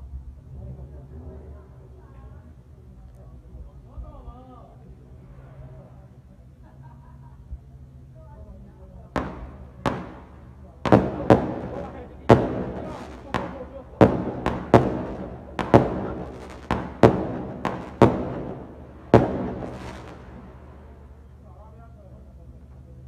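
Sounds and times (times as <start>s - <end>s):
fireworks bangs echoing: 9.1s - 21.2s.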